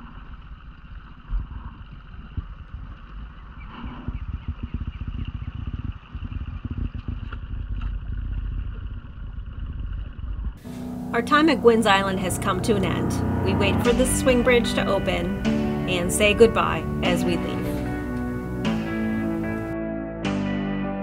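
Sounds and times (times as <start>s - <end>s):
wind buffeting microphone: 0.0s - 11.1s
outboard motor running: 10.6s - 19.7s.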